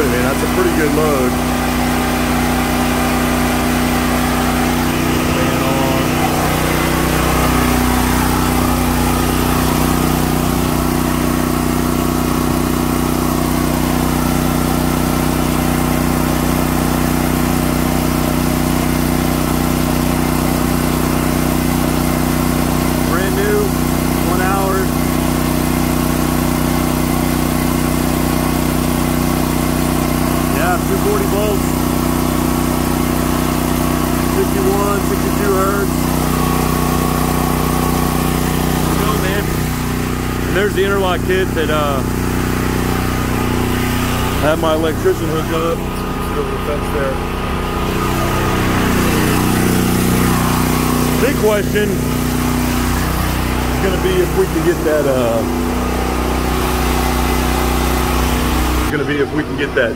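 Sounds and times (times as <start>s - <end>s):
generator engine droning: 0.0s - 59.9s.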